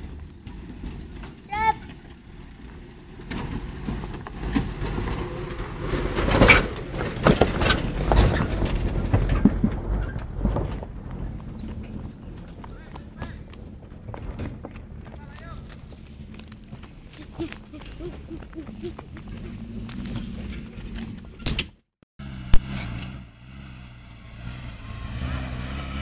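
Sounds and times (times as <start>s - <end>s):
vehicle body rattling and knocking: 0.0s - 17.8s
low engine rumble: 0.0s - 21.5s.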